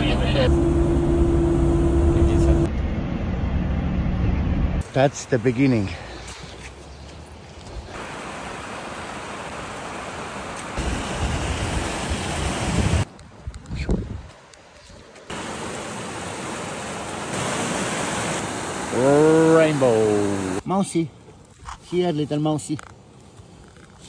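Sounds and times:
mountain stream rushing: 7.8 - 13.1, 14.3 - 20.6
wind on microphone: 10.8 - 14.4.

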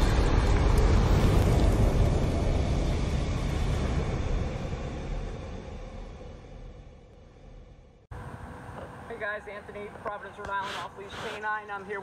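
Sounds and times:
fiery whoosh and boom: 0.0 - 7.0
deep rumble: 0.0 - 8.2.

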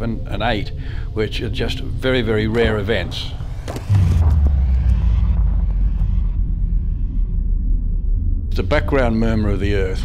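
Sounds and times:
deep low rumble: 1.4 - 10.0.

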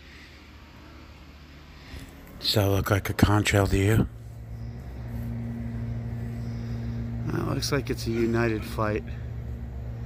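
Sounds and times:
low mechanical hum: 0.0 - 10.0
higher steady tone: 4.1 - 10.0.

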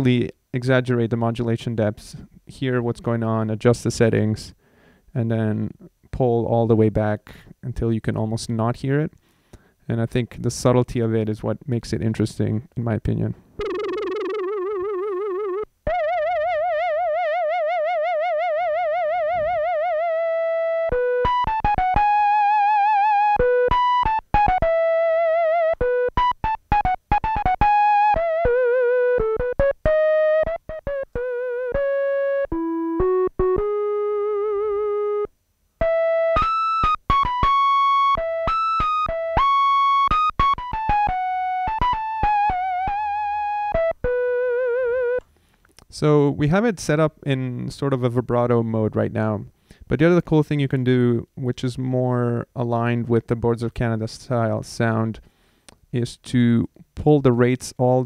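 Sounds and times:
synthesizer flute melody: 13.6 - 45.2.

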